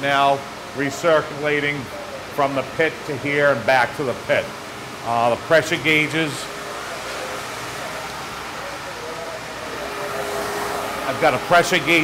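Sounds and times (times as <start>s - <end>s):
pump running: 0.0s - 12.0s.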